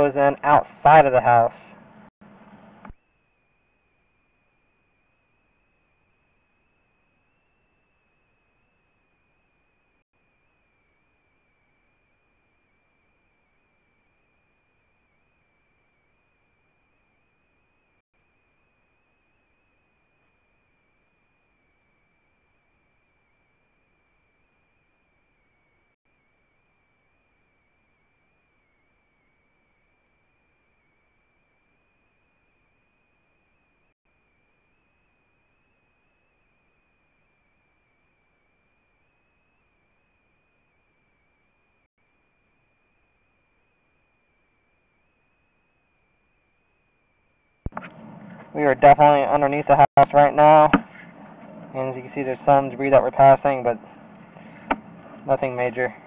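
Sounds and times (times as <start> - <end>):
thin high-pitched whine: 0.0 - 56.0.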